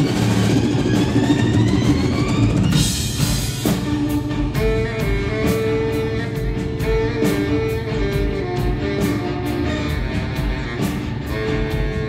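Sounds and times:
rock band low drone: 0:00.0 - 0:12.0.

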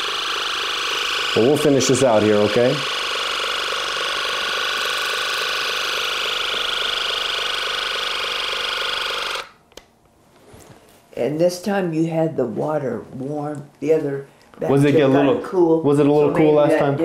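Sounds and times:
ear irrigation pump running: 0:00.0 - 0:09.6.

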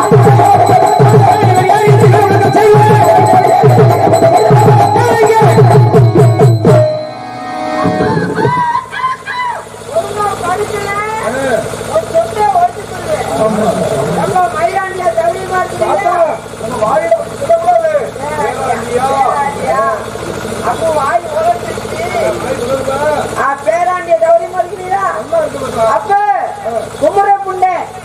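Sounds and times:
man talking through loudspeakers: 0:00.0 - 0:03.5
steady hum: 0:09.6 - 0:22.5.

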